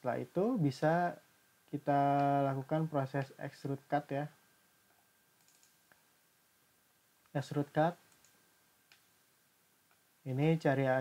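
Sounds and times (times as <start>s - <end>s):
computer mouse click: 5.4s - 6.0s, 8.1s - 9.1s.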